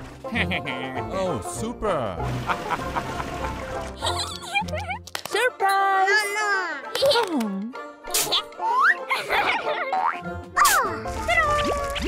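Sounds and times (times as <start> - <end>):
children's background music: 0.0 - 12.0.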